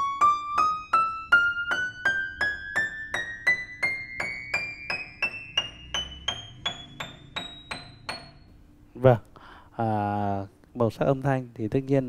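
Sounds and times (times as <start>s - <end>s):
single piano notes climbing: 0.0s - 8.7s.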